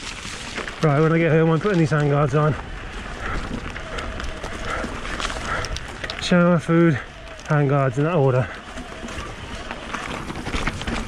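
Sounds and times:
bike rattling over bumps: 0:00.0 - 0:11.0
tyres crunching over dirt: 0:00.0 - 0:11.0.

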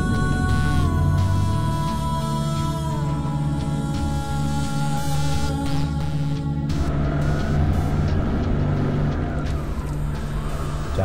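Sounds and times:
jeep engine and road noise: 0:00.0 - 0:04.4, 0:06.3 - 0:11.0
film music: 0:00.0 - 0:11.0.

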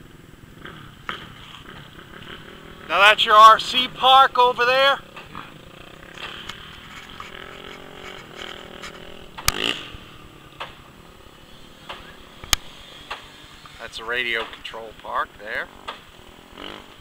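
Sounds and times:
distant small engines buzzing: 0:00.0 - 0:17.0.

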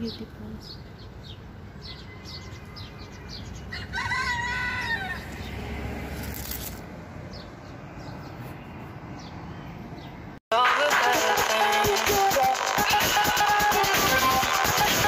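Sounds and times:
small birds chirping: 0:00.0 - 0:05.6, 0:06.6 - 0:10.4
rooster crowing: 0:02.0 - 0:05.4.

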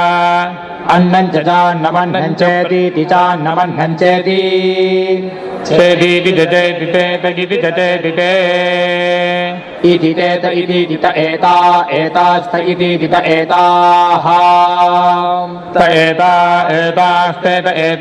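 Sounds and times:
voices chanting mantras: 0:00.0 - 0:18.0.

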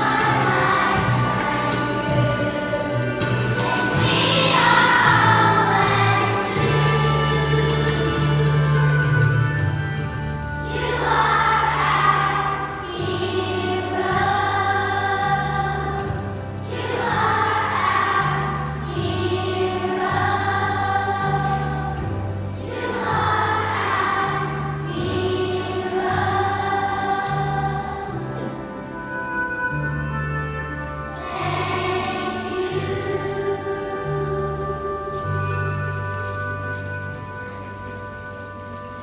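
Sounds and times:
children's choir singing: 0:00.0 - 0:38.1.

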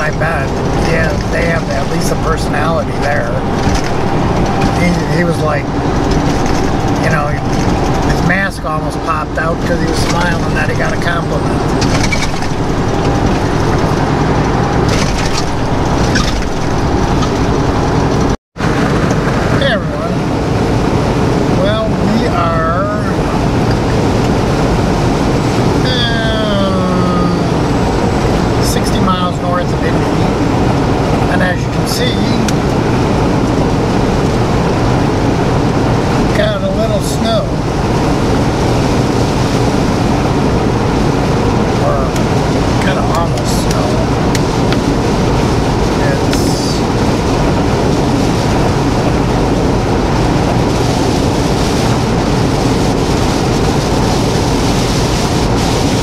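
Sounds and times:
deep rumble: 0:00.0 - 0:56.0
truck engine and road noise: 0:00.0 - 0:56.0
tyre noise on wet pavement: 0:00.0 - 0:56.0.

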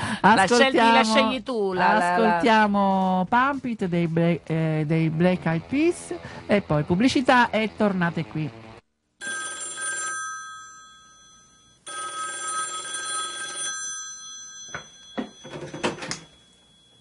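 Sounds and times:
telephone ringing: 0:09.2 - 0:17.0.

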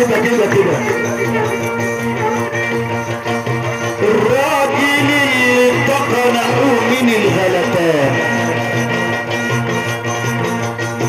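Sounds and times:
violin ornamented melody: 0:00.0 - 0:11.0.

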